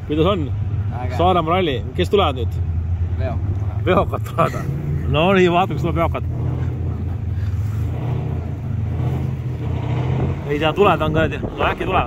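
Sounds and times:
truck engine droning: 0.0 - 12.0.

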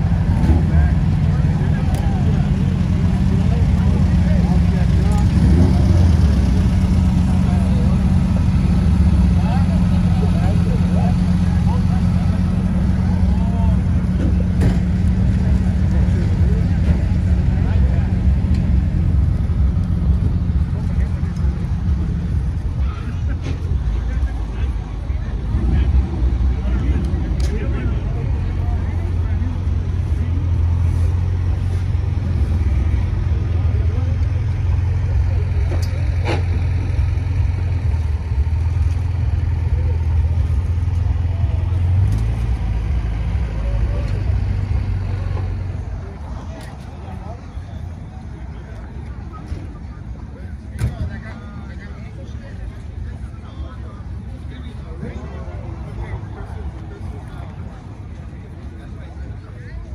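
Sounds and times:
vehicle engine running at low revs: 0.0 - 59.9.

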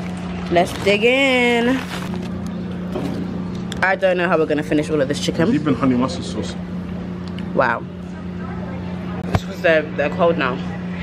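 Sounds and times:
steady low hum: 0.0 - 11.0
cardboard lid rustling: 0.6 - 2.3.

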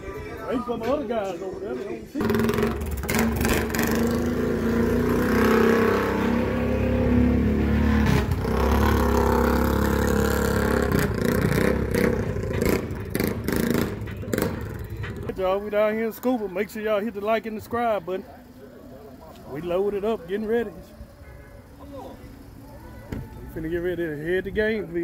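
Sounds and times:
atv engine revving: 2.2 - 15.7.

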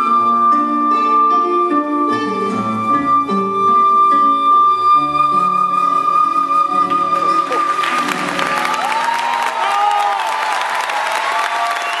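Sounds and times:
audience applauding and cheering: 6.9 - 12.0
shouts from audience: 8.4 - 12.0.

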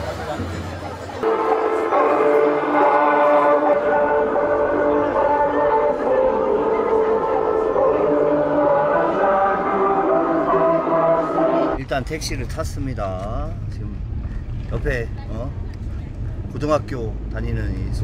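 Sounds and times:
crowd voices: 0.0 - 11.8
ceremonial horns long held notes: 1.2 - 11.8.

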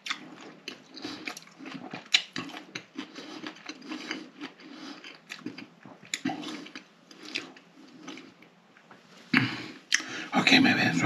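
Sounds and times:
wet mouth clicks and smacks: 0.0 - 8.9
person chewing food: 0.0 - 10.2.

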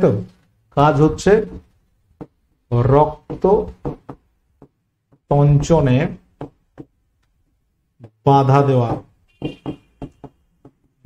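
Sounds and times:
marker tapping on whiteboard: 1.4 - 7.0, 8.0 - 11.0.

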